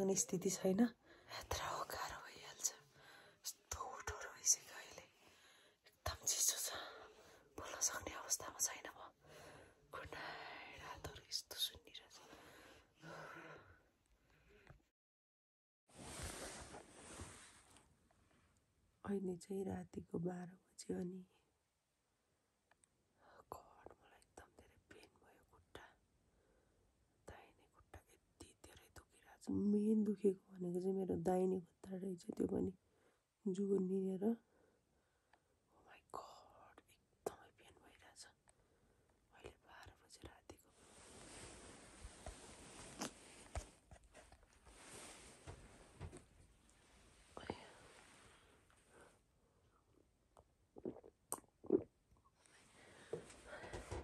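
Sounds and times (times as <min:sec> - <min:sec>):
person sipping and swallowing: 0:42.6 - 0:43.6, 0:50.4 - 0:52.0.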